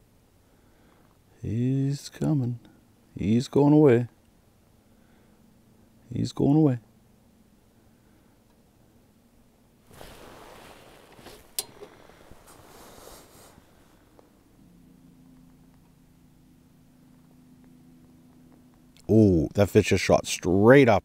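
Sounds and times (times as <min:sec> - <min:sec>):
faint low hum: 0:00.0 - 0:21.0
faint rustling of clothing: 0:09.8 - 0:14.6.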